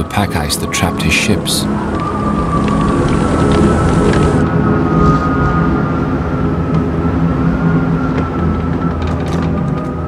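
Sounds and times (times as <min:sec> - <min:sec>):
low mechanical rumble: 0:00.7 - 0:10.0
faint clicks: 0:01.6 - 0:04.4.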